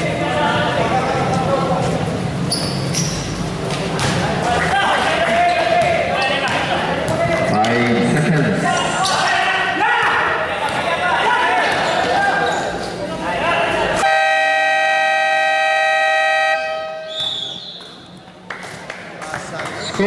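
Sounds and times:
crowd voices and shouting: 0:00.0 - 0:15.4
scoreboard buzzer horn: 0:14.0 - 0:17.1.

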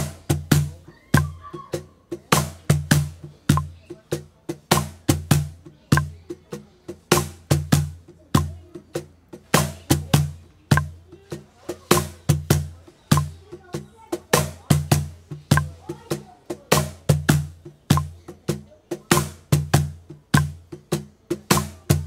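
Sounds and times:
cajon played by hand: 0:00.0 - 0:22.0.

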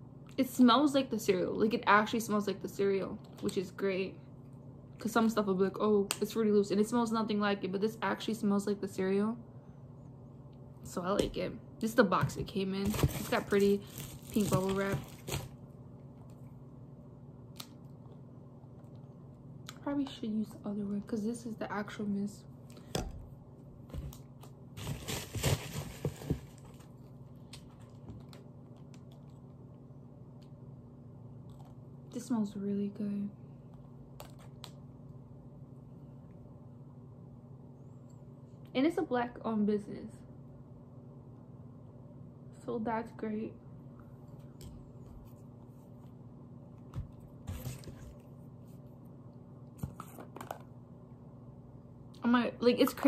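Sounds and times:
low steady hum: 0:00.0 - 0:53.0
packaging rustle: 0:12.9 - 0:15.6, 0:24.8 - 0:26.9.

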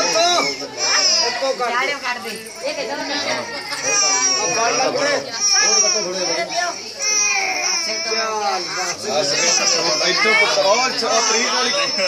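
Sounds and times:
baby crying: 0:00.0 - 0:01.9, 0:03.2 - 0:12.0
adults talking: 0:00.0 - 0:12.0.

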